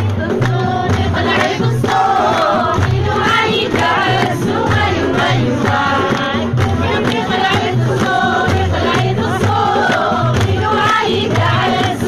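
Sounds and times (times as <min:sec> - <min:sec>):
frame drums beating: 0:00.0 - 0:12.0
hand clapping: 0:00.0 - 0:12.0
women singing together: 0:00.0 - 0:12.0.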